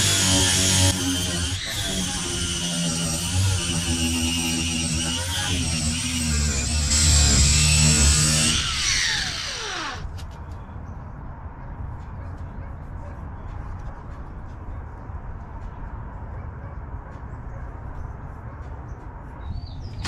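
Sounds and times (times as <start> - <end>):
angle grinder grinding metal: 0.0 - 10.1.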